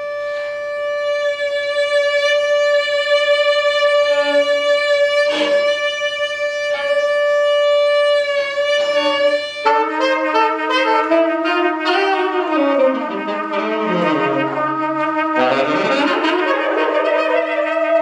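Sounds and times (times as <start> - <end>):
improvised ensemble music: 0.0 - 18.0
trumpet sustained notes: 0.0 - 18.0
low part sliding in pitch: 4.1 - 18.0.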